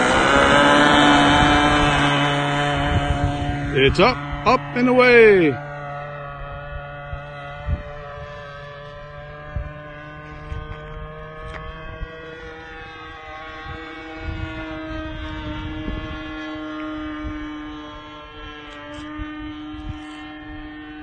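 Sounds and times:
model plane engine buzzing: 0:00.0 - 0:21.0
wind rumble on microphone: 0:00.0 - 0:21.0.

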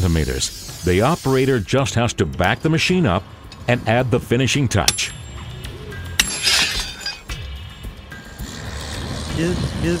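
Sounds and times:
background music: 0:00.0 - 0:10.0
hammer striking steel wedges: 0:04.8 - 0:05.3, 0:06.1 - 0:07.5.

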